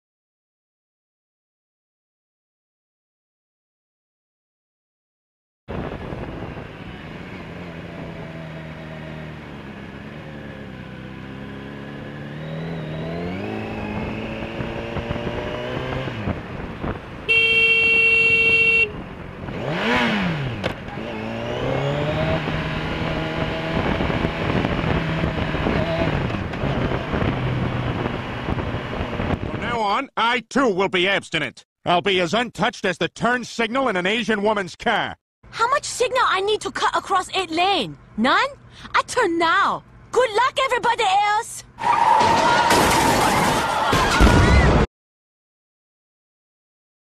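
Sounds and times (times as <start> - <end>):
motorcycle engine accelerating: 5.7 - 29.7
loud horn blast: 17.2 - 19.0.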